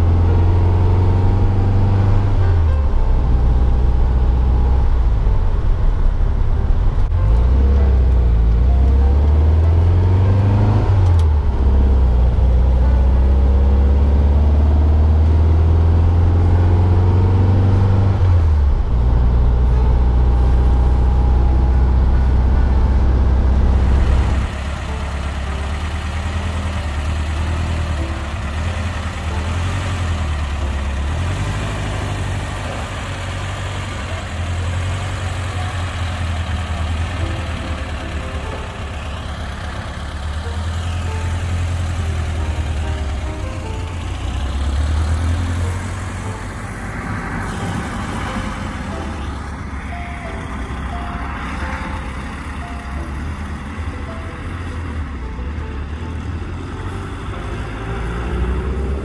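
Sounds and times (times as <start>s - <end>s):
background music: 0.0s - 59.0s
car engine pulling away: 0.0s - 59.0s.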